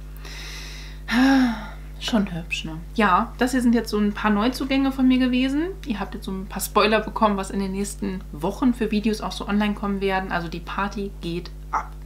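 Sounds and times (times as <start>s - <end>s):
woman breathing in: 0.2s - 1.9s.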